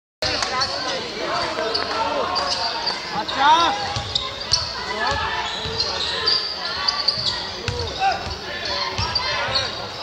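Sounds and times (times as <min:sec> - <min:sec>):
voices of players and spectators: 0:00.2 - 0:10.0
basketball bouncing on court: 0:03.8 - 0:06.0, 0:07.1 - 0:09.7.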